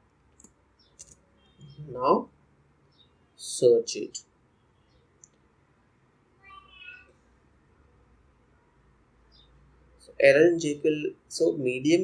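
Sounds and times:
faint pitched call: 6.4 - 7.2.

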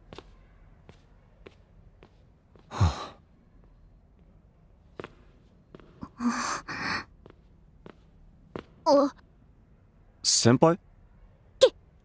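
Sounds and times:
breathy sigh: 2.7 - 3.2.

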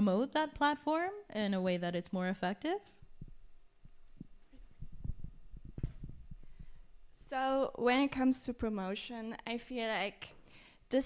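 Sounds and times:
faint steady hum: 0.0 - 11.0
microphone handling thumps: 3.0 - 6.9.

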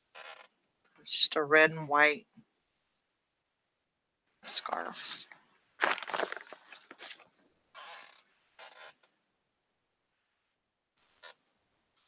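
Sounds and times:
clothing rustling: 5.8 - 8.1.

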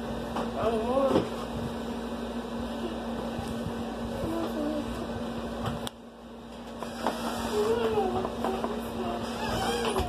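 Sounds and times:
appliance humming: 0.0 - 10.0.

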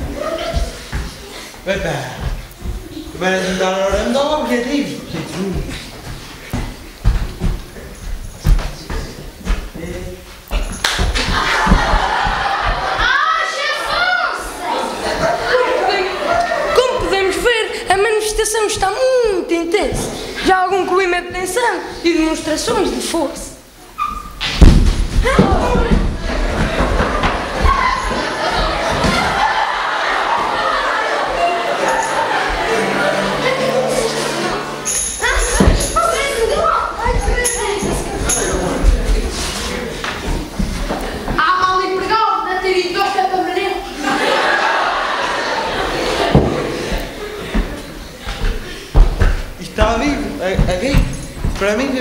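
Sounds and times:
indistinct talking in a hall: 0.0 - 52.0
voices shouting over one another: 11.4 - 17.3, 27.2 - 34.8
knocks and thumps: 24.4 - 28.2, 48.4 - 51.8
heavy thump on wooden stage: 24.5 - 27.9.

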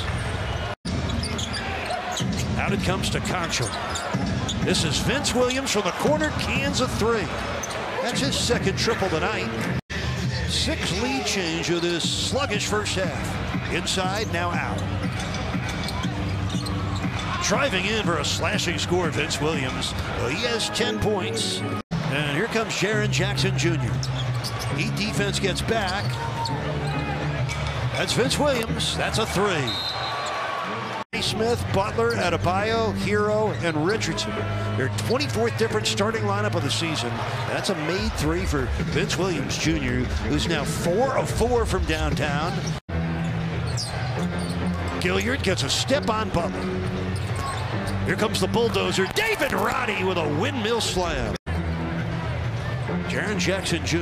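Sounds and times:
crowd noise: 0.0 - 54.0.

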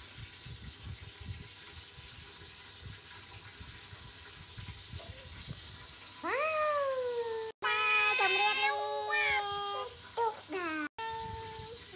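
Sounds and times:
toddler's high-pitched call: 6.2 - 11.8.

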